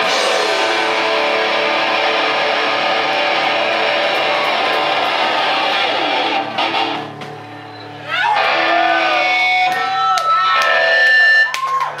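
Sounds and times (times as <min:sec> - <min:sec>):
electric guitar notes bending: 0:00.0 - 0:11.5
crowd cheering: 0:00.0 - 0:12.0.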